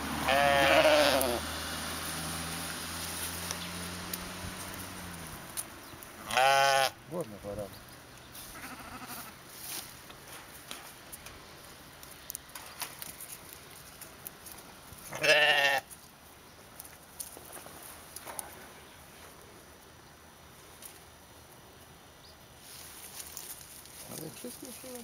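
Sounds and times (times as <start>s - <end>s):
sheep bleating: 0.2s - 1.4s, 6.2s - 7.0s, 8.5s - 9.4s, 15.1s - 15.9s.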